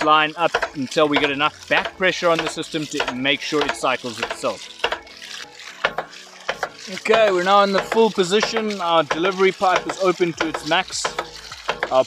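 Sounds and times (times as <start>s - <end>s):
water gushing and splashing: 0.0s - 12.0s.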